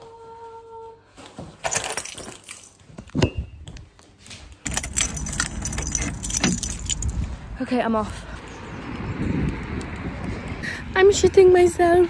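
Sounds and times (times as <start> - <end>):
metallic jingling: 4.6 - 7.4
wind rumble: 4.7 - 12.0.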